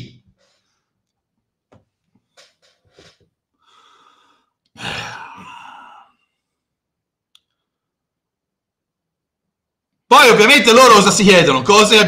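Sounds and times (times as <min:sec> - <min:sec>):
man breathing softly: 0:03.0 - 0:04.7
man sighing into microphone: 0:03.6 - 0:06.4.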